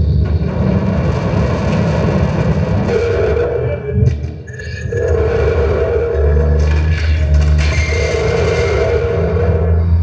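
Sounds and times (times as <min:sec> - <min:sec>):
loud low electronic drone: 0:00.0 - 0:10.0.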